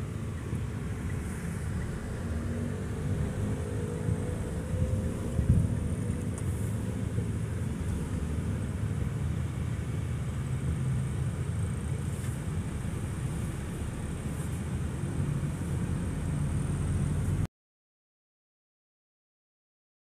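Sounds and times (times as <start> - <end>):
engine and road rumble: 0.0 - 17.5
faint engine tone: 0.0 - 17.5.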